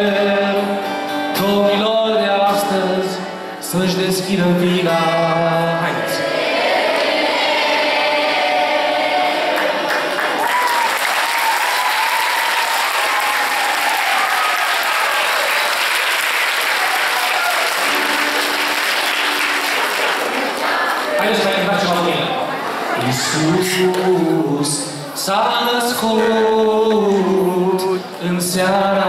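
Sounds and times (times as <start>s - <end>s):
person singing with acoustic guitar: 0.0s - 9.4s, 23.0s - 29.0s
audience applauding: 9.4s - 22.3s.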